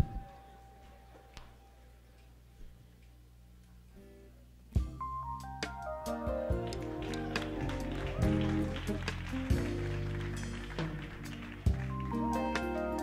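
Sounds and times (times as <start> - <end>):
jazz-funk band playing: 4.8 - 13.0.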